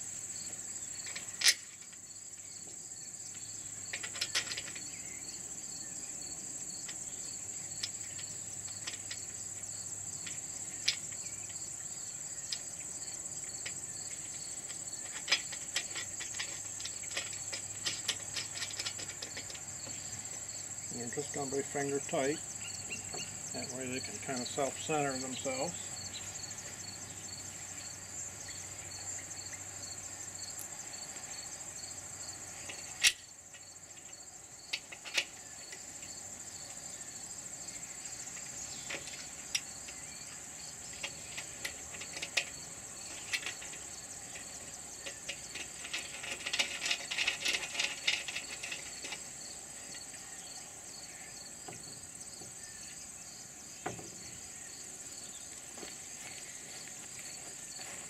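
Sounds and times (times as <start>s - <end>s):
insects trilling: 0.0s - 58.0s
faint regular chirp: 22.6s - 24.5s.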